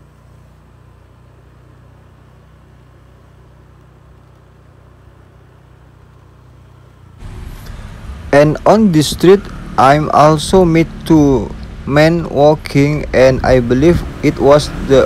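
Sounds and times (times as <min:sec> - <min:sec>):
street ambience: 0:00.0 - 0:15.0
faint low rumble: 0:06.9 - 0:15.0.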